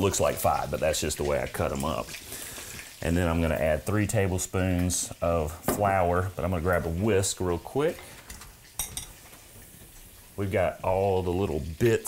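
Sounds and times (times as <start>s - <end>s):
metal kitchen utensils clinking: 8.0s - 9.3s.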